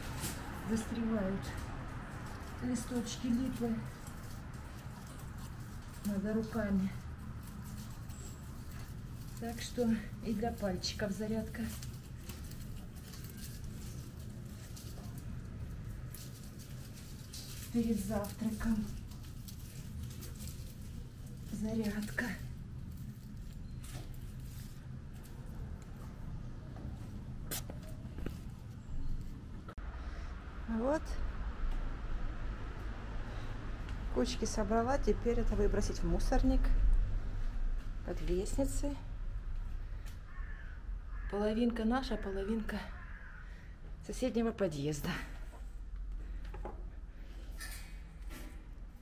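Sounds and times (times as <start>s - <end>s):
broom sweeping leaves on pavement: 0.0s - 1.4s
broom sweeping leaves over grating: 0.0s - 25.8s
steady low rumble: 0.0s - 49.0s.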